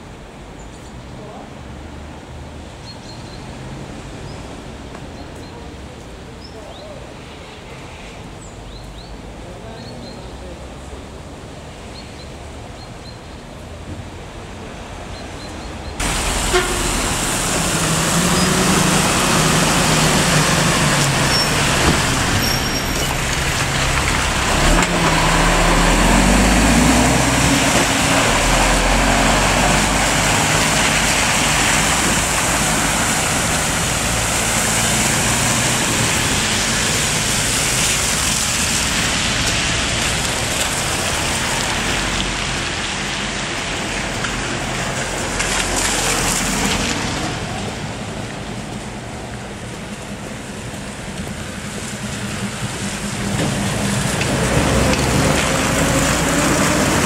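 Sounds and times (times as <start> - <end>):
tyres hissing on wet asphalt: 0.3 - 13.2, 14.3 - 57.0
heavy vehicle engine rumble: 15.6 - 57.0.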